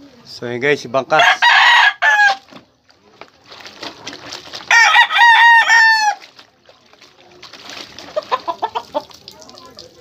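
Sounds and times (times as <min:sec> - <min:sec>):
chicken clucking: 0:08.0 - 0:10.0.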